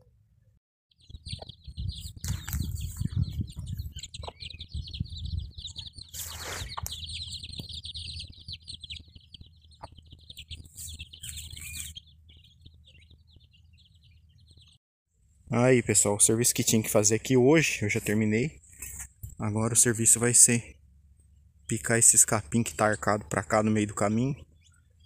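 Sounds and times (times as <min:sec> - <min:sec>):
chicks peeping: 0:00.9 - 0:14.8, 0:21.3 - 0:25.0.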